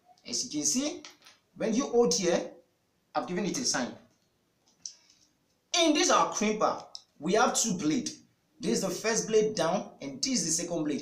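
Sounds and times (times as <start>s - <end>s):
person speaking: 0.0s - 2.6s, 3.2s - 4.1s, 5.7s - 11.0s.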